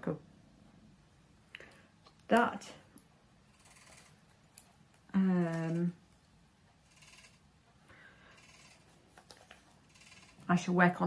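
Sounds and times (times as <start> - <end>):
knitting rustling and clicks: 2.0 - 7.4, 8.4 - 10.6.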